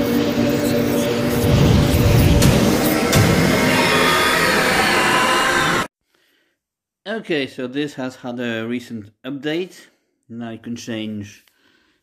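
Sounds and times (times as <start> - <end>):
dark intro music: 0.0 - 5.9
sharp hits: 1.0 - 5.9.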